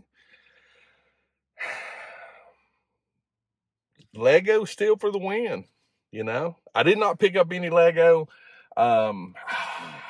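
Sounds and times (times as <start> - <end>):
man breathing in: 0.0 - 2.9, 8.3 - 8.8, 9.4 - 10.0
man sighing: 1.6 - 2.6, 9.4 - 10.0.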